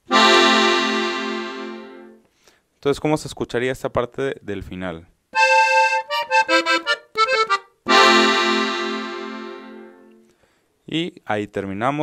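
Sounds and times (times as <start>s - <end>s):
button accordion playing: 0.1s - 2.2s, 5.4s - 10.2s.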